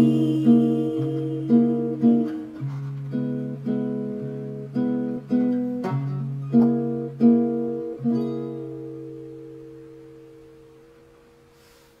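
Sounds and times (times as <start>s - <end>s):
acoustic guitar chord ringing: 0.0s - 11.9s.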